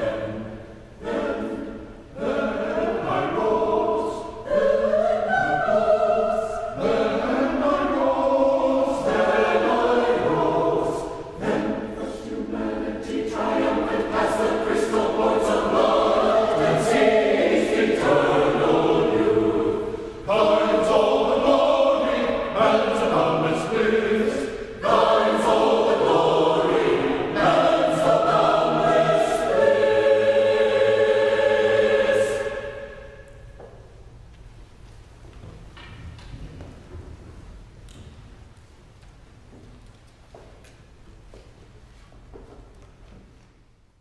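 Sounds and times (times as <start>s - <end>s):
church choir singing: 0.0s - 33.7s.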